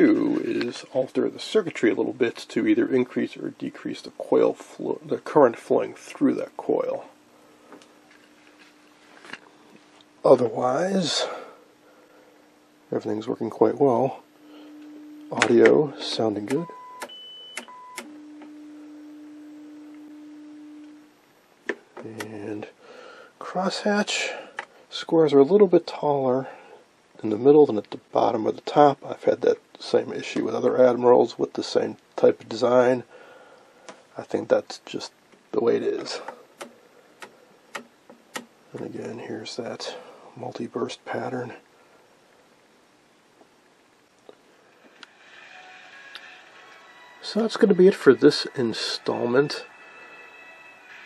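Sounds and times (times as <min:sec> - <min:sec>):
steady high tones from television: 0:00.0 - 0:51.0
low pure test tone: 0:10.0 - 0:21.4.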